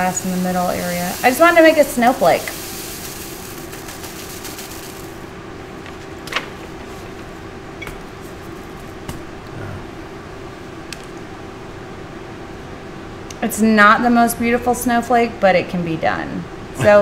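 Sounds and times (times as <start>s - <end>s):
fan humming: 0.0s - 17.0s.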